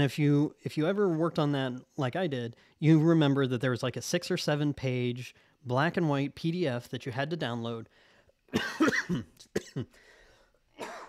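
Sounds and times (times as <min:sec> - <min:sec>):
man coughing: 0:08.5 - 0:10.1, 0:10.8 - 0:11.0.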